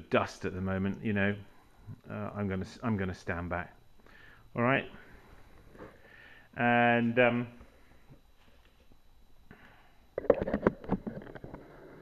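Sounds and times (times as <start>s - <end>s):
knocks clicks and rustles of handling: 10.2s - 11.7s.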